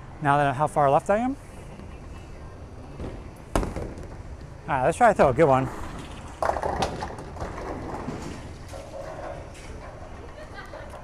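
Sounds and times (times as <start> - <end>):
bowling ball rolling rumble: 5.3 - 11.0.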